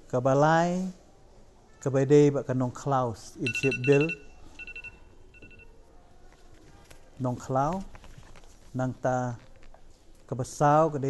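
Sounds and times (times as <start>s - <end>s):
electronic phone ring: 3.4s - 5.8s.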